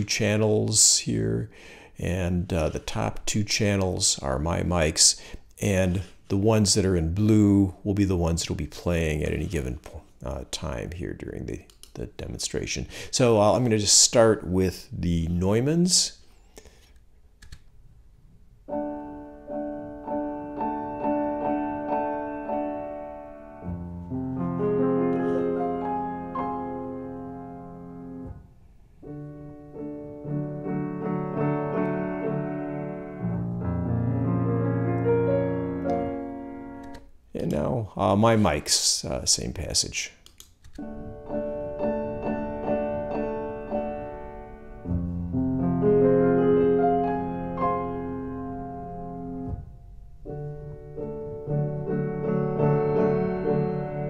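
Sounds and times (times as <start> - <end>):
piano chords: 18.6 - 38.4, 40.8 - 54.0.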